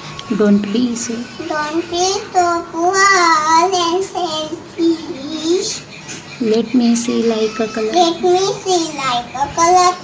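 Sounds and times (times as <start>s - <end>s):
girl reciting in sing-song voice: 1.3s - 6.0s, 7.1s - 10.0s.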